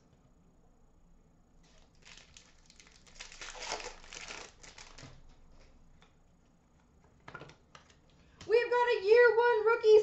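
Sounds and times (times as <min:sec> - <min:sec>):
wrapper crinkling and tearing: 0:01.6 - 0:05.4.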